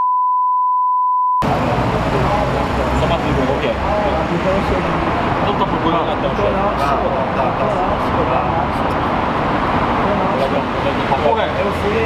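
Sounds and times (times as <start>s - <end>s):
censor bleep: 0.0s - 1.4s
men talking: 1.4s - 8.6s, 10.0s - 12.0s
street traffic: 1.4s - 12.0s.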